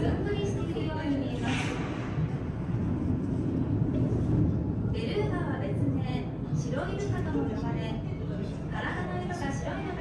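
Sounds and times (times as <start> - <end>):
low rumble of hall noise: 0.0 - 10.0
chatter of many people: 4.2 - 10.0.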